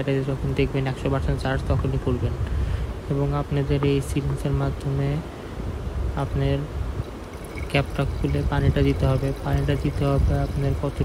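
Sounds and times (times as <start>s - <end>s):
person talking: 0.0s - 5.3s, 6.1s - 6.8s, 7.4s - 11.0s
water trickling from syringe: 7.0s - 11.0s.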